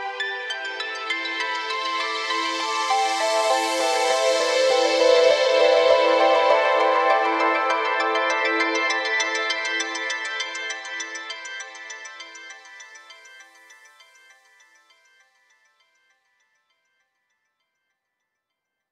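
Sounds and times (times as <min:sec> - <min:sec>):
electronic music with synthesizer: 0:00.0 - 0:14.2.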